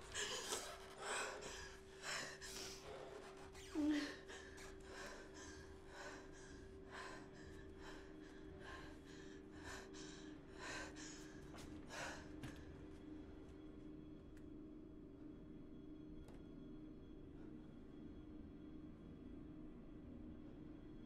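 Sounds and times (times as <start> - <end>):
woman gasping breaths: 3.8 - 12.6.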